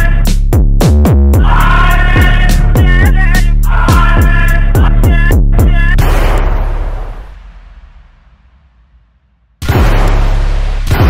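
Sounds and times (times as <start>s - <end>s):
noisy boom with rumbling tail: 3.9s - 11.0s.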